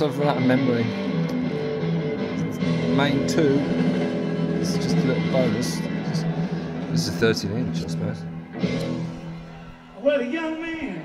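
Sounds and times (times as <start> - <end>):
electric guitar playing held notes: 0.0 - 10.0.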